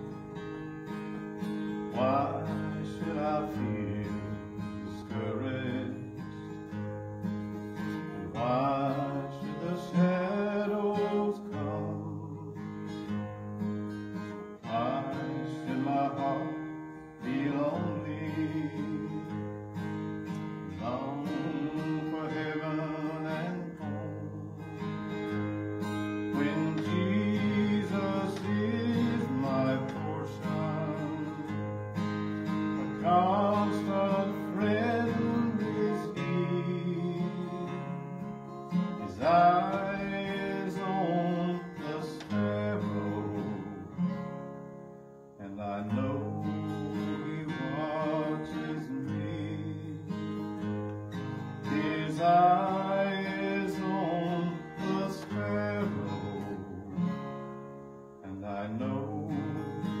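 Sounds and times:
acoustic guitar strummed: 0.0 - 60.0
man singing a hymn: 1.8 - 6.4, 7.8 - 13.0, 14.2 - 24.8, 26.1 - 31.7, 32.4 - 44.2, 45.4 - 57.3, 58.2 - 60.0.

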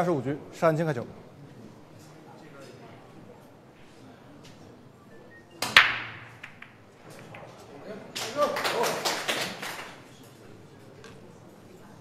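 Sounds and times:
loud crack of balls breaking: 5.6 - 6.8
cue clicking on ball: 5.6 - 7.8
billiard balls clicking: 5.6 - 8.4.

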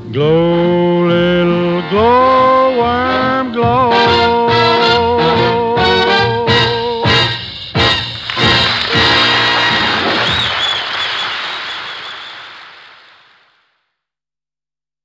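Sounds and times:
swing big band chords: 0.0 - 10.6.

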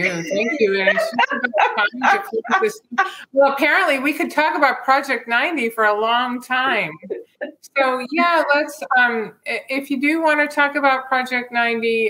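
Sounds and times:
woman laughing: 0.0 - 3.2.

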